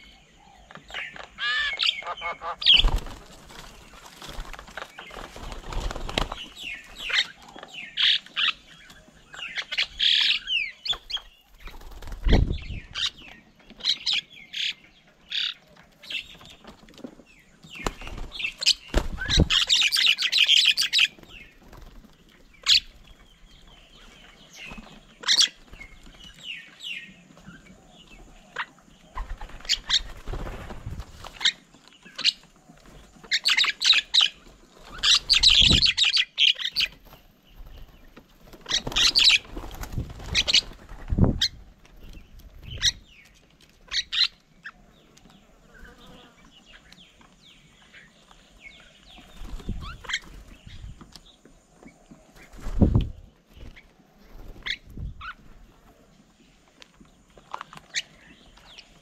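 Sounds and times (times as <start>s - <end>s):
birds harsh chattering calls: 0.0s - 59.0s
wing flaps: 2.6s - 6.6s, 17.8s - 19.8s, 29.2s - 31.5s, 37.6s - 43.0s.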